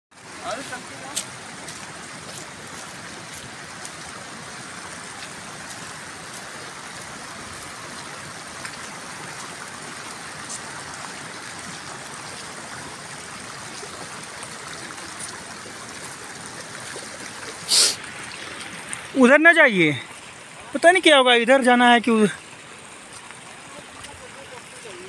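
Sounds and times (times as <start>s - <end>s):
running water rushing: 0.1s - 25.0s.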